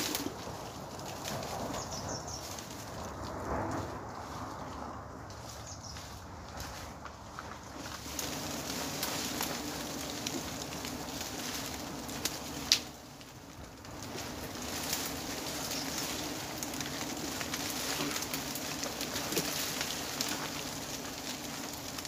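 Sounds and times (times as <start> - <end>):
scattered crackling: 0.0 - 5.5, 6.4 - 22.0
bees buzzing: 7.9 - 22.0.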